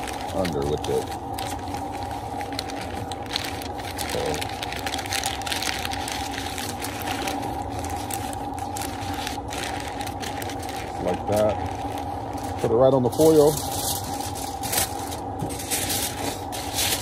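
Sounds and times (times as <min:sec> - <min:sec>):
paper and foil crinkling: 0:00.0 - 0:17.0
steady mechanical hum: 0:00.0 - 0:17.0.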